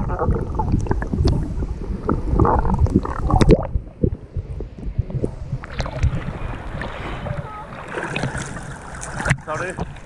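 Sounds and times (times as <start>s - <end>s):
wind on microphone: 0.0s - 10.0s
sea waves lapping: 5.3s - 10.0s.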